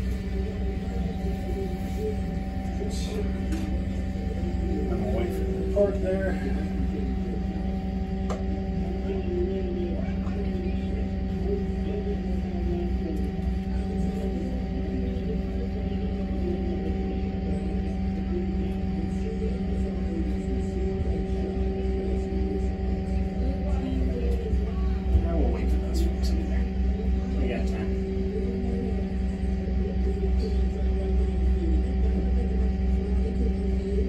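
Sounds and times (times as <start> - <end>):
boat machinery hum: 0.0 - 34.0
faint wavering sounds: 0.0 - 34.0.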